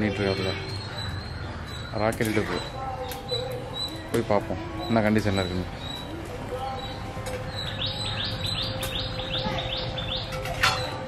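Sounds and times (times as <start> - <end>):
bird chirping: 0.0 - 11.0.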